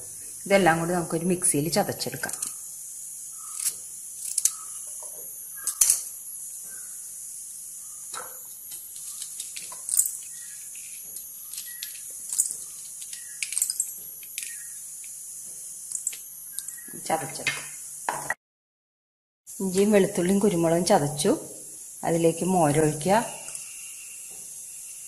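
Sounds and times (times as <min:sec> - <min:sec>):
steady hiss: 0:00.0 - 0:18.1, 0:19.5 - 0:25.0.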